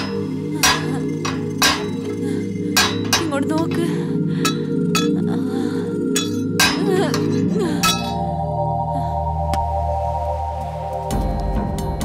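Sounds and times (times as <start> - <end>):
metal pipe clanking on bars: 0.0 - 5.2, 6.2 - 8.2
low music drone: 0.0 - 12.0.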